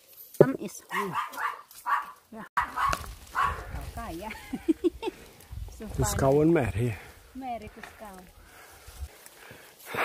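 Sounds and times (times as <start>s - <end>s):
dog barking: 0.9s - 3.7s.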